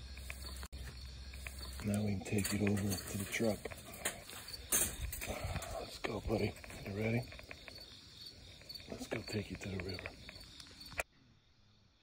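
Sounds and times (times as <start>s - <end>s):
crickets chirping: 0.0s - 12.0s
metal trap rattling: 1.5s - 5.4s.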